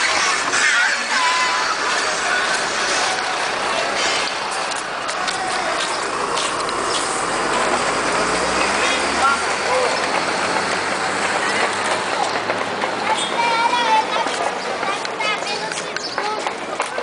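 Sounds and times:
indistinct voices: 0.0s - 17.0s
outdoor street noise: 0.0s - 17.0s
vehicle engine hum: 0.0s - 17.0s.

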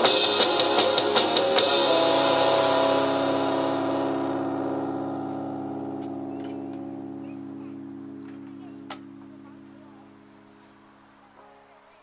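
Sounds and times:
electric guitar chord ringing: 0.0s - 11.7s.

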